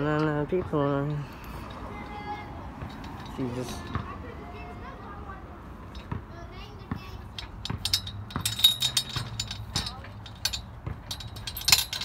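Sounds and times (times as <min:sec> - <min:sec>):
metal chains rattling and clinking: 0:01.1 - 0:03.9, 0:07.3 - 0:12.0.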